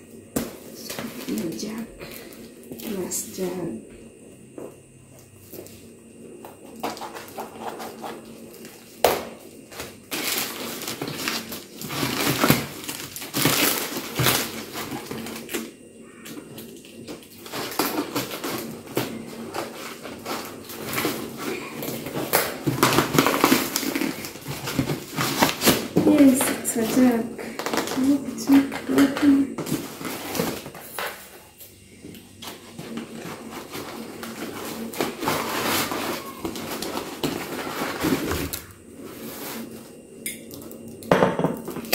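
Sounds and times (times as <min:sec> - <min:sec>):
plastic crinkling: 0:06.7 - 0:31.6, 0:32.4 - 0:39.9
cardboard rustling: 0:09.8 - 0:15.7, 0:17.4 - 0:31.6, 0:32.4 - 0:39.9.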